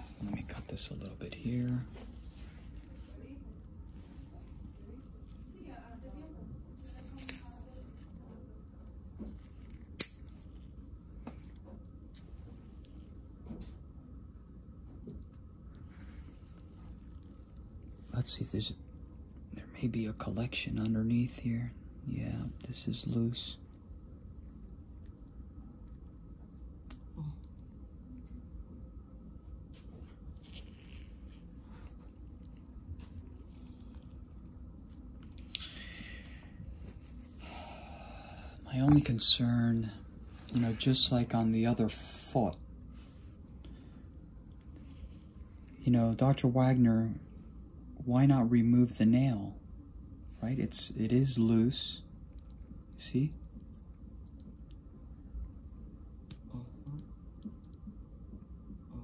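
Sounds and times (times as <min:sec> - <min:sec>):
man speaking: 0:00.0 - 0:02.0, 0:38.6 - 0:42.6
low room noise: 0:00.0 - 0:59.0.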